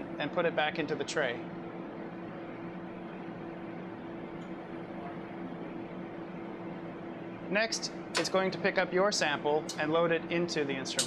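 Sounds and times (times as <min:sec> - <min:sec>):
equipment and ventilation hum: 0:00.0 - 0:11.0.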